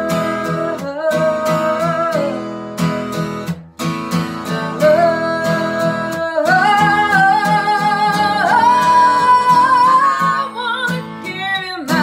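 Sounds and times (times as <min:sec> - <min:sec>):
woman singing: 0:00.0 - 0:03.2, 0:04.3 - 0:12.0
strummed acoustic guitar: 0:00.0 - 0:12.0.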